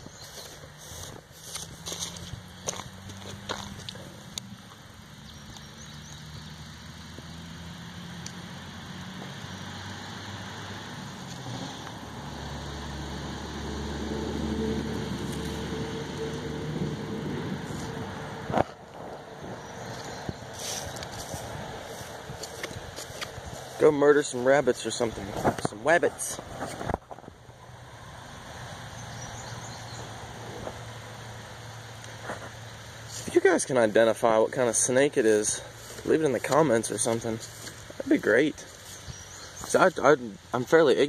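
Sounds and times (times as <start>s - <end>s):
motor engine humming: 0.0s - 40.7s.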